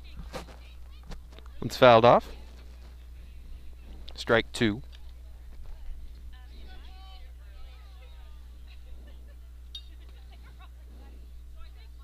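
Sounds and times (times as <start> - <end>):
steady low hum: 0.0 - 12.0
distant people calling out: 4.9 - 12.0.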